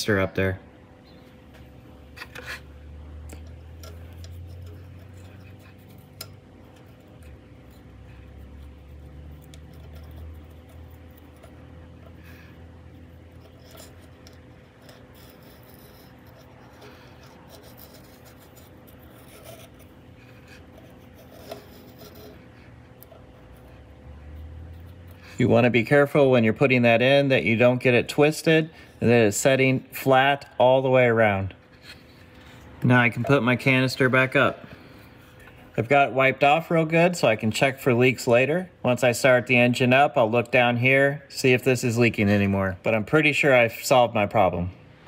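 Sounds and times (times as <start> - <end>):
steady low hum: 0.0 - 45.0
rubber o-ring rubbing: 3.6 - 25.5.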